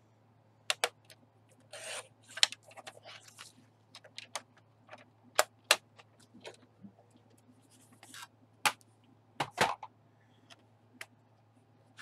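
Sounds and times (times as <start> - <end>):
paper trimmer blade scraping: 1.7 - 2.0.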